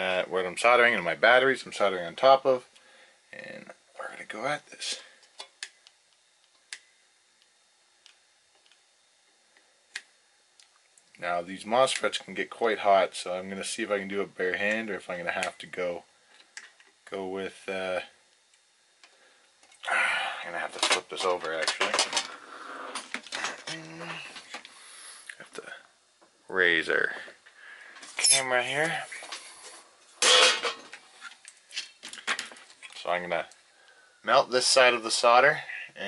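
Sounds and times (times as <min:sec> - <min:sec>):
circuit board clattering on tin sheet: 0:30.2 - 0:31.0.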